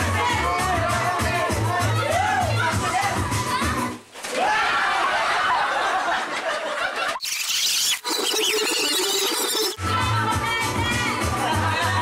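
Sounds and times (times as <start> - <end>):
high-pitched wavering squeals: 7.2 - 9.8.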